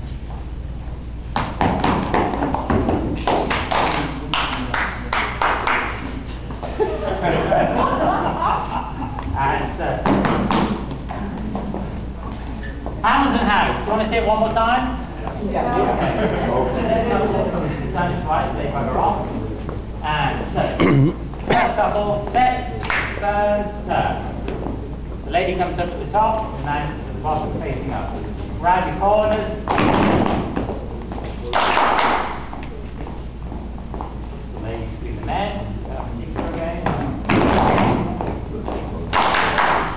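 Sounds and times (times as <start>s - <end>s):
shoes shuffling on hall floor: 0.0s - 3.6s, 5.7s - 8.0s, 8.6s - 15.5s, 19.0s - 22.8s, 24.2s - 31.6s, 32.3s - 39.1s
shoes tapping on hard floor: 1.3s - 3.7s
people talking: 3.7s - 10.2s, 11.1s - 29.7s, 34.4s - 39.2s.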